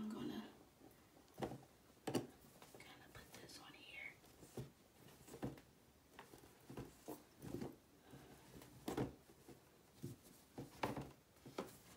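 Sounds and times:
faint rustling: 0.5s - 11.9s.

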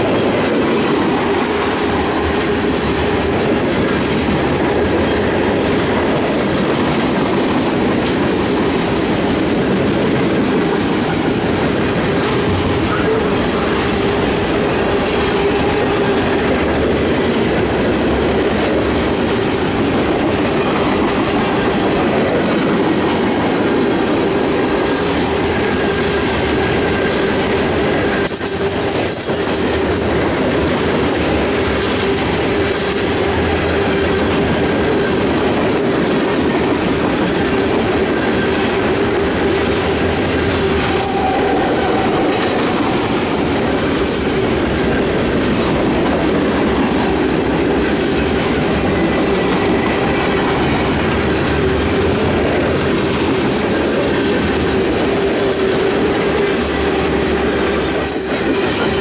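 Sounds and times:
steel wheels rumbling on rail: 0.0s - 59.0s.

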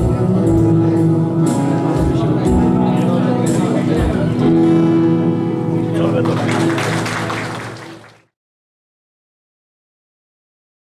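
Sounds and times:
guitar strumming: 0.0s - 7.4s
live band music: 0.0s - 8.0s.

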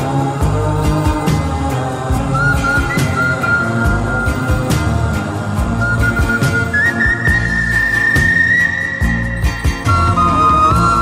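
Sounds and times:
bass: 0.0s - 11.0s
wooden flute melody: 2.3s - 5.0s, 5.8s - 11.0s.

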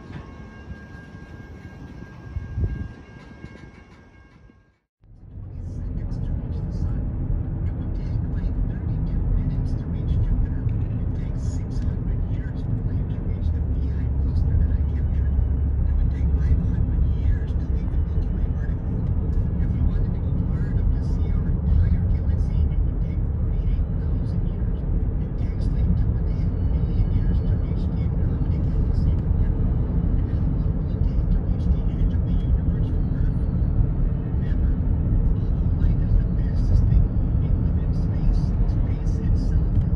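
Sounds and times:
car road rumble: 5.0s - 39.9s.

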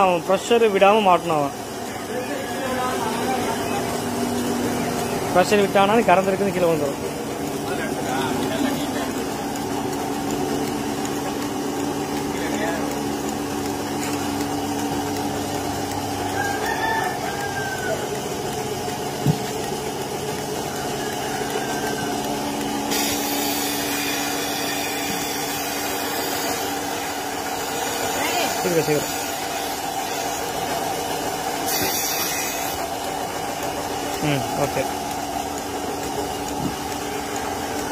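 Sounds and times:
vacuum pump humming: 0.0s - 37.9s.

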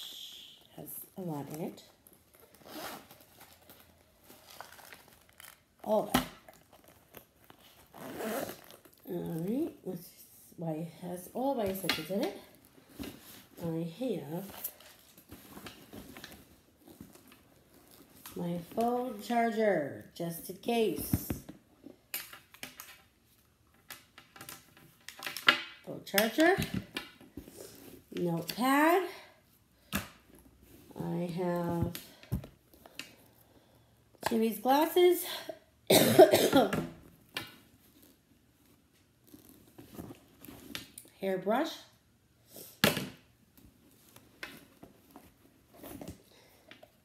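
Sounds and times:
nylon case rustling: 0.9s - 9.8s, 11.6s - 19.2s, 37.0s - 41.0s, 43.9s - 47.0s.

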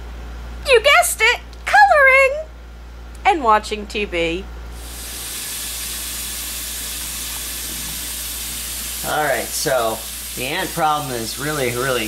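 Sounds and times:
steady hiss: 4.8s - 12.0s.

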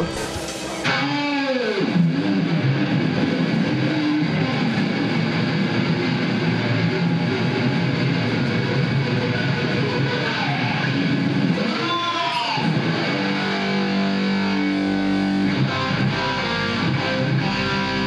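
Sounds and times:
electric guitar: 0.0s - 18.0s
rock band playing live: 0.0s - 18.0s.

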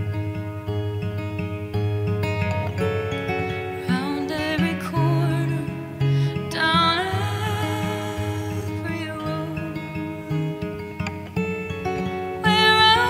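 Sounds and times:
acoustic guitar: 0.0s - 13.0s
woman singing: 3.8s - 10.6s, 12.4s - 13.0s.

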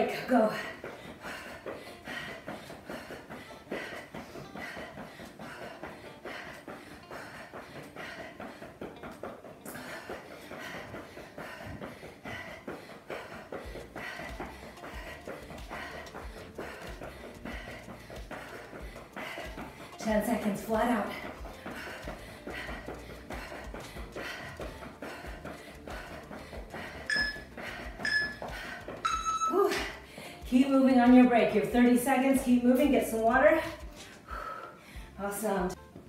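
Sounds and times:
hard breathing: 0.0s - 30.5s, 33.6s - 35.2s
sneakers pounding on rubber floor: 0.0s - 34.6s.

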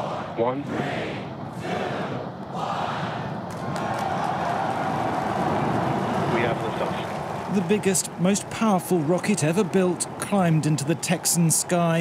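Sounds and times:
rocket engines roaring: 0.0s - 12.0s
crowd cheering and shouting: 0.7s - 12.0s.

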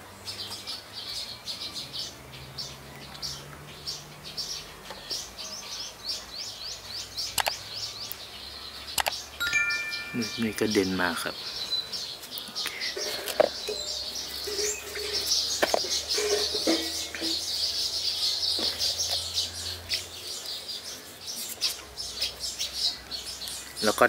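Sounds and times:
birds chirping: 0.0s - 24.0s
faint clicks: 8.9s - 9.2s.

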